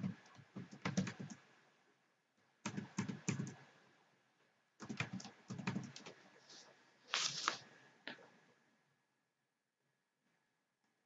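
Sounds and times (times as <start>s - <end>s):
computer keyboard typing: 0.0s - 1.4s, 2.6s - 3.6s, 4.8s - 6.2s.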